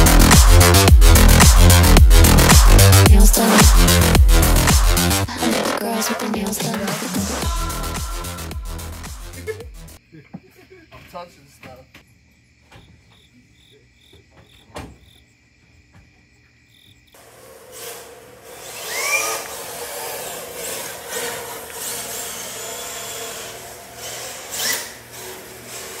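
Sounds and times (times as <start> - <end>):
crickets chirping: 10.0 - 17.2
toy car electric motor whining: 17.4 - 26.0.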